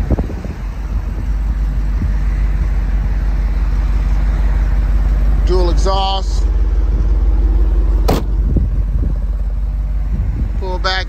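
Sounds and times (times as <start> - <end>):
car engine idling: 0.0 - 11.0
brief thump: 8.1 - 8.4.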